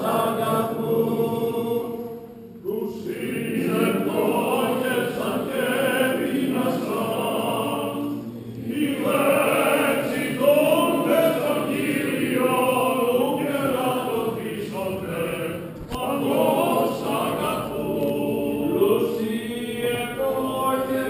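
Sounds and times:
group of voices chanting: 0.0s - 21.0s.

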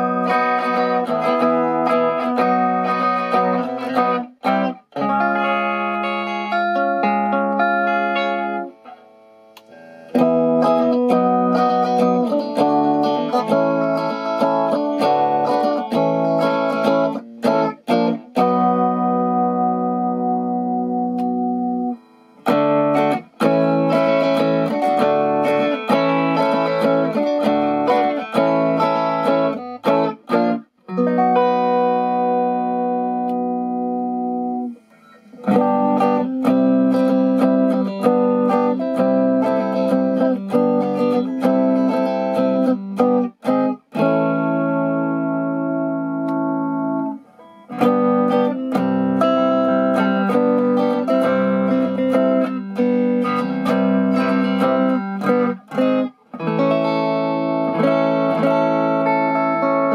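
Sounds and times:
electric guitar chords: 0.0s - 59.9s.

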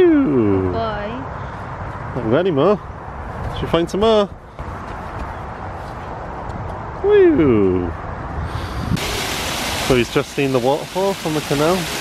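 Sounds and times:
small waterfall rushing: 9.0s - 12.0s.

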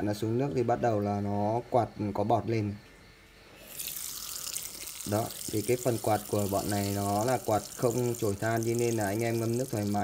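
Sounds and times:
fan churning water into bubbles: 3.6s - 10.0s.

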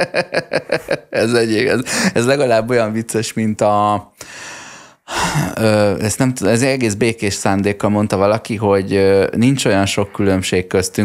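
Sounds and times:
man speaking: 0.7s - 4.2s, 5.2s - 11.0s
man breathing: 1.8s - 2.2s, 4.1s - 5.6s.

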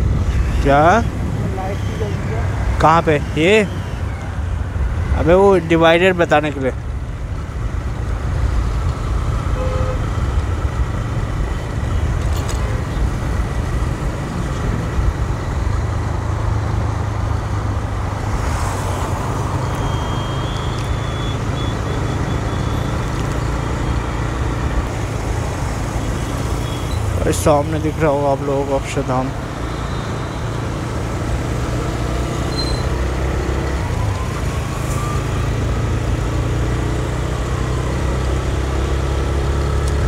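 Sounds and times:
passing traffic: 0.0s - 40.0s
wind rush and road noise: 0.0s - 40.0s.

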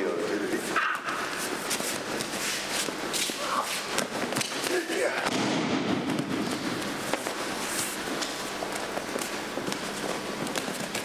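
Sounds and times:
body rolling scuffling on mat: 6.0s - 11.0s.

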